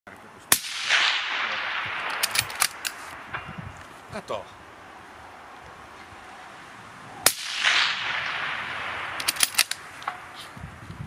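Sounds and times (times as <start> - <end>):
suppressed rifle shot: 0.5 - 3.6, 7.2 - 10.4
sharp clicks: 0.9 - 3.9, 7.3 - 10.4.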